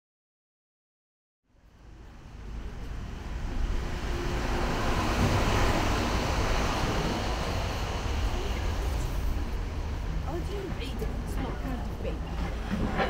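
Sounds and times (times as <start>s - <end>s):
traffic: 1.5s - 13.0s.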